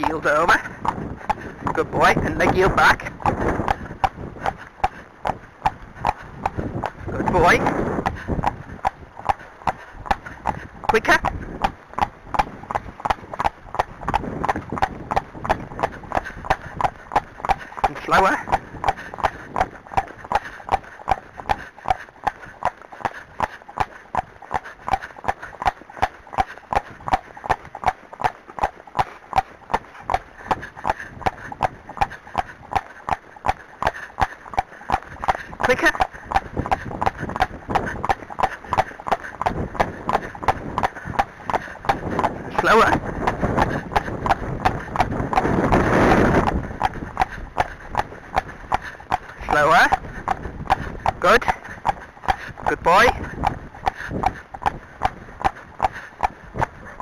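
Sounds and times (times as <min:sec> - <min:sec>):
horse hooves trotting on pavement: 0:00.0 - 0:57.0.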